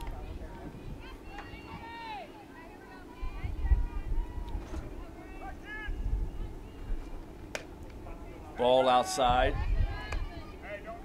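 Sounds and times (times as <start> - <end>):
wind rumbling on microphone: 0.0 - 2.0, 3.0 - 11.0
faint voices calling out: 0.0 - 11.0.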